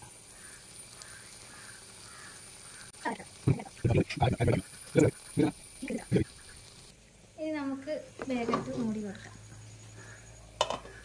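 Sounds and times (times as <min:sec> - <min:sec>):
faint bird calling: 0:00.3 - 0:06.9, 0:09.9 - 0:11.0.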